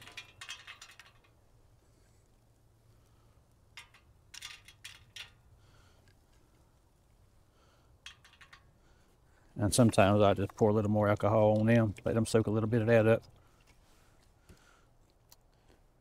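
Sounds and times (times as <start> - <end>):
pellets clicking into metal tube: 0.0 - 1.4.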